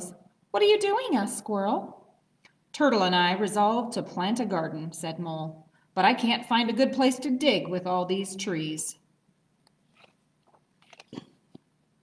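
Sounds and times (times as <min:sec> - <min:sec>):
book page turning: 0:09.9 - 0:11.3.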